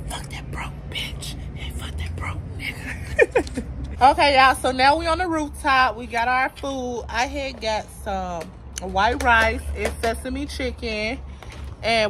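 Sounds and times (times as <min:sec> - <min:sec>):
person whispering: 0:00.0 - 0:02.9
steady low hum: 0:00.0 - 0:06.4.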